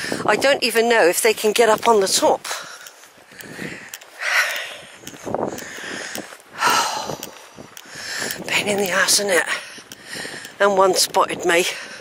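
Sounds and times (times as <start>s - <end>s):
breathing close to microphone: 0.0s - 0.3s, 2.5s - 8.5s, 9.5s - 10.6s, 11.7s - 12.0s.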